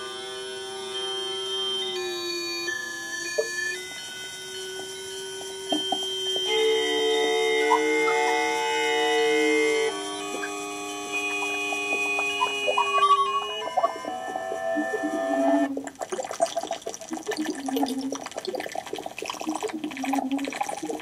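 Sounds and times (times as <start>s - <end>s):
sustained electronic tones: 0.0s - 16.5s.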